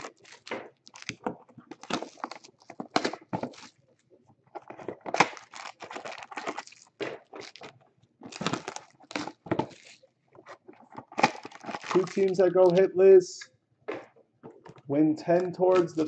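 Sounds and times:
plastic wrap crinkling and tearing: 0.0 - 4.0, 4.6 - 12.9, 13.9 - 16.0.

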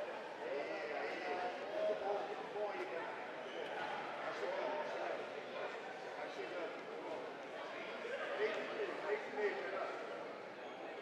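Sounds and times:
arena crowd noise: 0.0 - 11.0.

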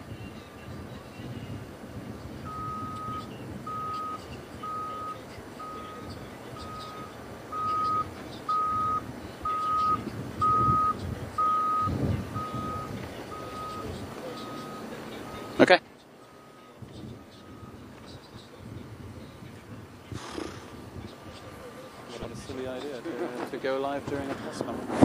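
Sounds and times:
vehicle reversing alarm beeping: 0.1 - 19.8.

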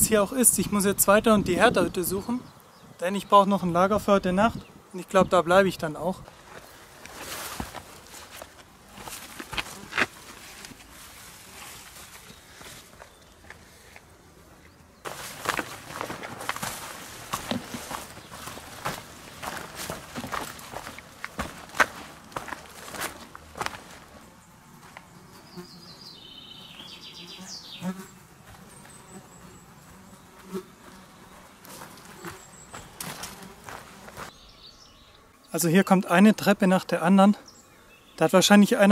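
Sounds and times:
insect buzzing: 0.0 - 36.4, 37.2 - 38.2
footsteps on rocky path: 6.2 - 14.1, 15.0 - 25.2, 30.4 - 34.4
plants rustling against legs: 6.2 - 14.2, 15.0 - 25.1, 30.8 - 34.4.

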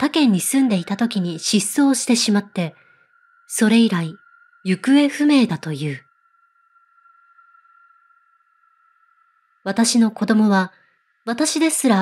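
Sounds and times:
faint high-pitched music drone: 0.0 - 12.0.

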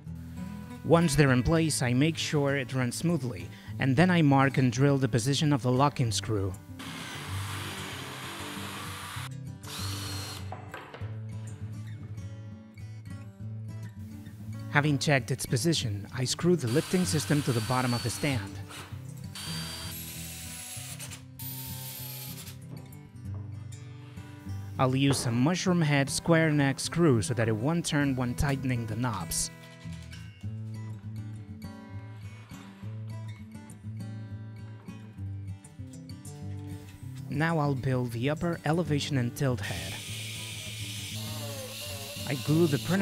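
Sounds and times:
background music: 0.0 - 43.0
cordless drill driving screws: 6.8 - 10.5, 16.7 - 22.6, 40.0 - 43.0.

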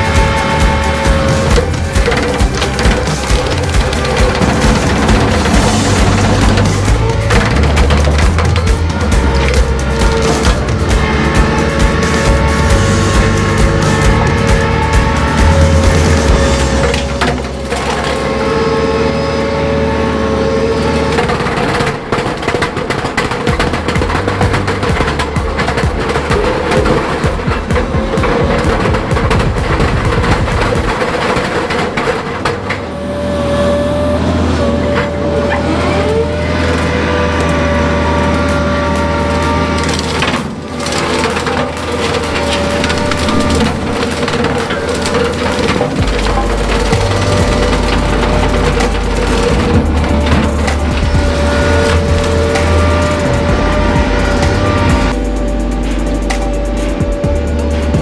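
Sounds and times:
wood cracking and splintering: 0.0 - 55.4
background music: 0.0 - 58.0
hydraulic brush mower running: 0.0 - 58.0.

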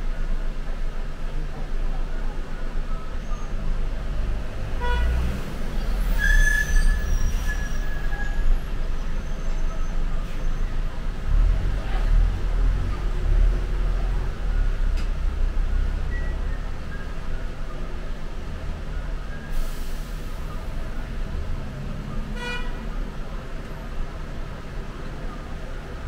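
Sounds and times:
bus engine rumble: 0.0 - 26.0.

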